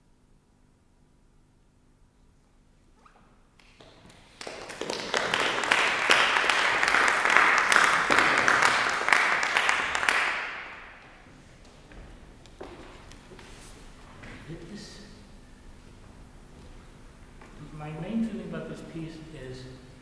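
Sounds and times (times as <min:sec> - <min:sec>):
audience applauding: 0:03.6 - 0:11.2.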